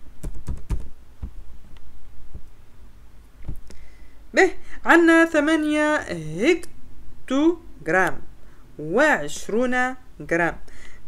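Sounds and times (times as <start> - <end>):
computer keyboard typing: 0.2 - 0.9.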